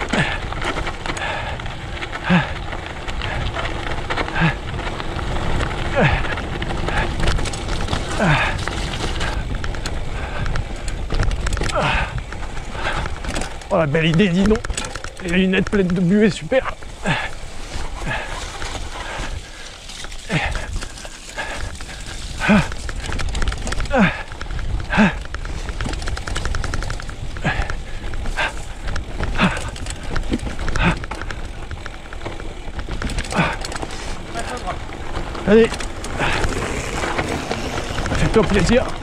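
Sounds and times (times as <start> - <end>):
rider's breathy grunts: 0.0 - 11.0, 11.6 - 13.6, 16.6 - 25.9, 27.3 - 31.6, 32.9 - 39.0
bike tyres rumbling on dirt: 0.0 - 39.0
wind: 0.0 - 39.0.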